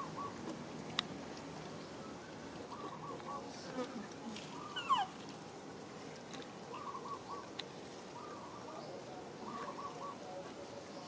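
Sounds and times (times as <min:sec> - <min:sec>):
birds calling: 0:00.0 - 0:01.0, 0:01.7 - 0:05.2, 0:06.0 - 0:11.0.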